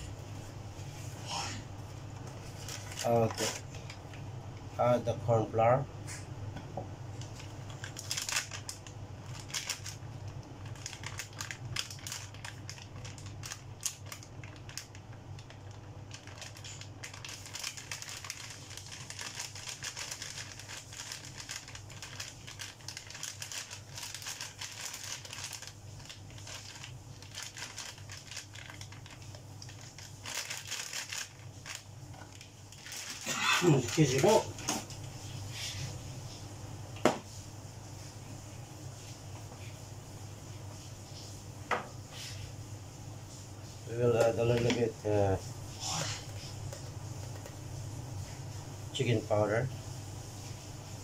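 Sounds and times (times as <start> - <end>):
steady low hum: 0.0 - 51.0
plastic bag crinkling: 2.3 - 4.2, 7.2 - 35.0.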